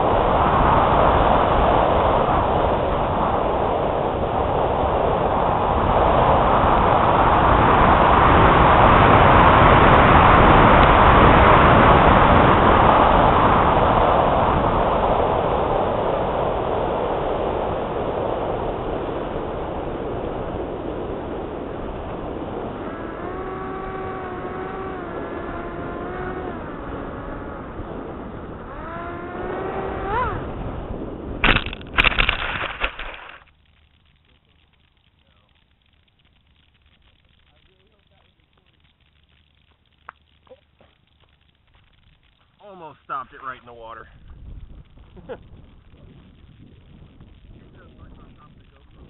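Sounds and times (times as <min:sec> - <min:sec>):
wind rumble on microphone: 0:00.0 - 0:42.5, 0:43.3 - 0:49.0
model plane motor humming: 0:21.4 - 0:31.0.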